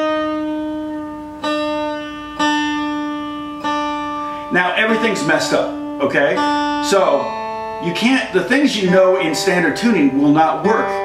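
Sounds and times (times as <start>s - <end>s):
acoustic guitar string plucked: 0.0s - 11.0s.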